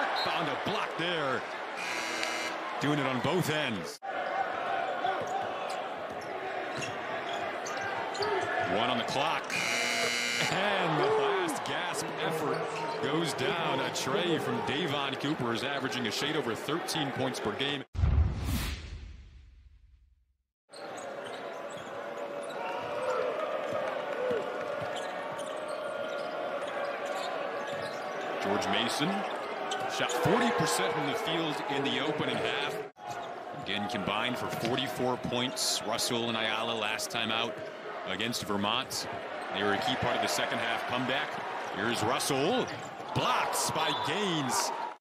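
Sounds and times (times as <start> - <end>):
arena crowd noise: 0.0 - 17.9, 20.7 - 45.0.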